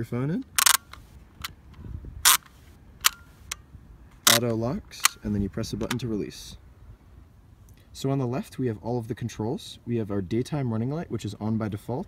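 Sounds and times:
plastic clamp clicking: 4.3 - 5.2.

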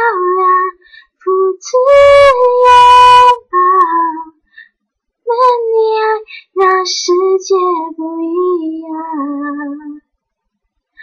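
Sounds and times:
woman singing unaccompanied: 0.0 - 4.4, 5.2 - 10.1.

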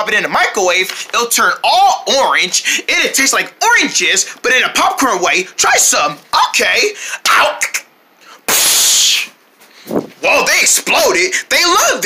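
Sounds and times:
short hissing burst: 8.5 - 10.0.

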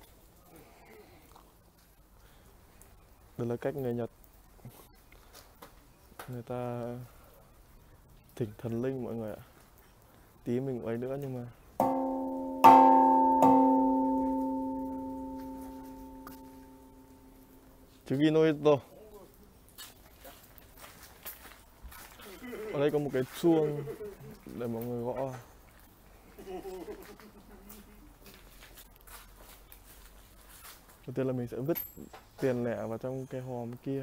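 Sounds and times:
soft footsteps on stone steps: 11.8 - 17.3, 19.7 - 22.5, 26.9 - 31.0
metal bell ringing: 11.8 - 17.6.

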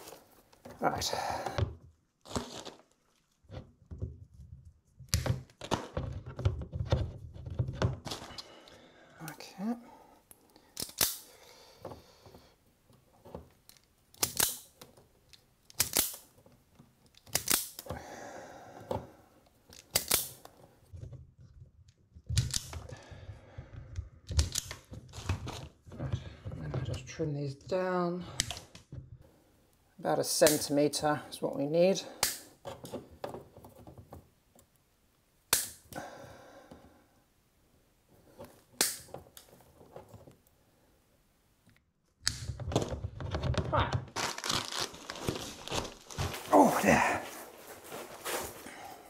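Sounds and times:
plastic cable sheath scraping: 2.2 - 3.7, 24.5 - 26.6, 42.7 - 48.7
cable cutters snipping: 10.8 - 11.3, 14.1 - 14.8, 15.7 - 16.2, 17.1 - 17.9.

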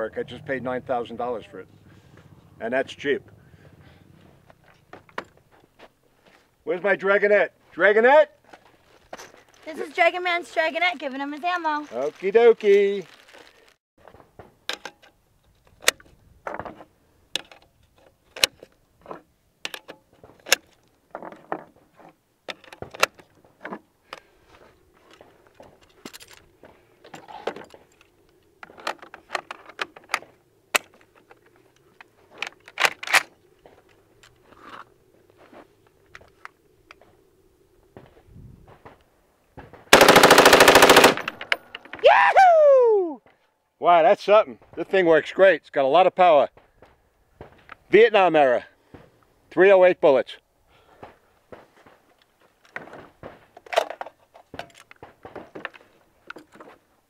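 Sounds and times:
metallic rifle handling clicks: 27.7 - 34.4
rifle firing automatic burst: 39.9 - 41.4.

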